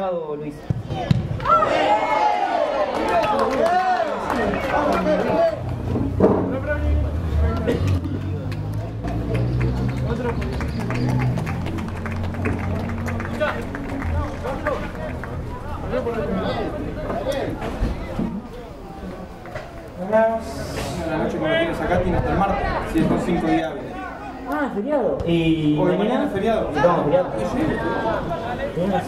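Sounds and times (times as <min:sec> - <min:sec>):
voices shouting: 0:01.4 - 0:05.6.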